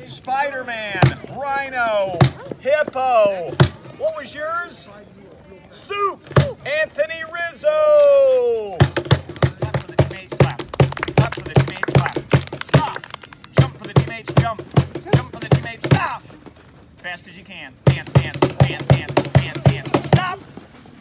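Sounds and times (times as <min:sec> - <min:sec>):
cajon slapped in quick beat: 0:08.8 - 0:16.0, 0:17.9 - 0:20.4
children clapping: 0:09.8 - 0:13.9.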